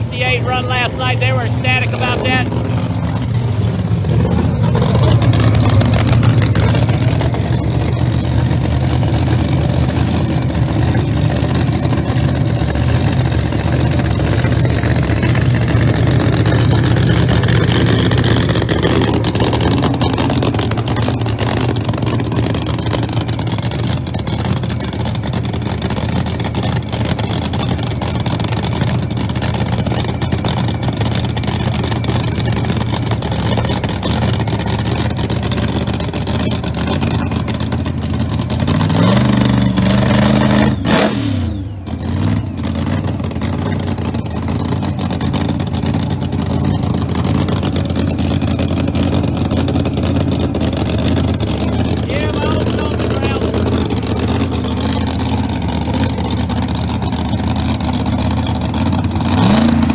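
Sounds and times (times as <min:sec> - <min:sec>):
race car engine idling and revving: 0:00.0 - 0:59.9.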